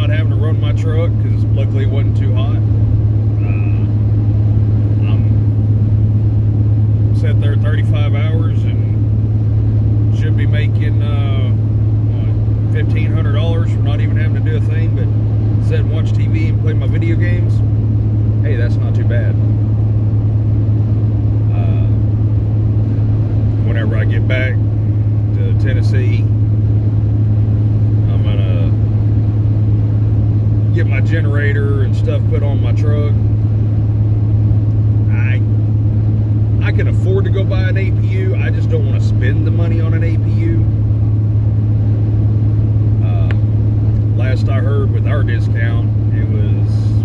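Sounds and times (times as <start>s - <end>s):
pickup engine drone: 0.0s - 47.0s
road noise inside car: 0.0s - 47.0s.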